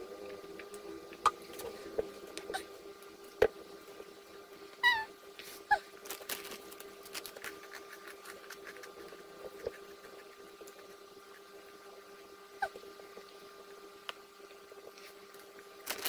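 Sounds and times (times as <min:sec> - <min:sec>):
faint steady hum: 0:00.0 - 0:16.0
soft chewing: 0:05.4 - 0:11.9.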